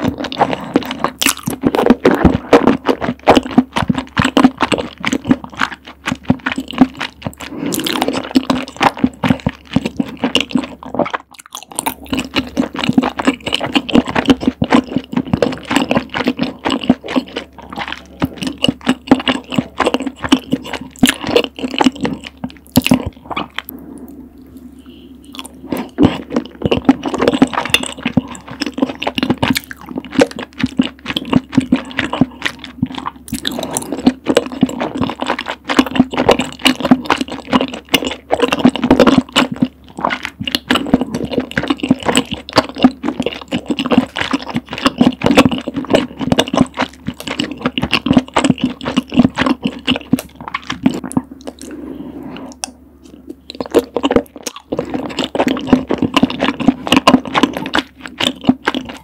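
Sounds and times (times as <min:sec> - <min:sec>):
wet chewing mouth sounds: 0:00.0 - 0:59.0.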